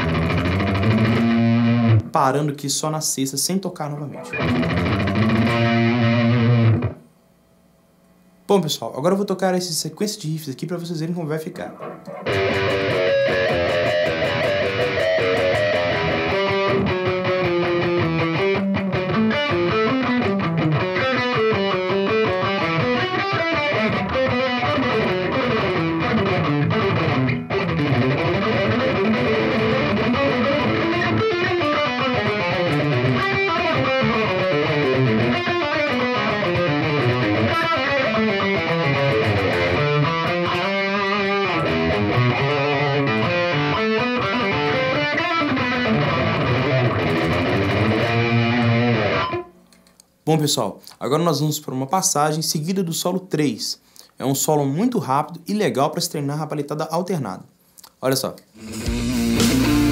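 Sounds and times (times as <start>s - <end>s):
distorted electric guitar riffs: 0.0s - 2.2s, 4.0s - 7.2s, 11.5s - 49.7s, 58.5s - 59.9s.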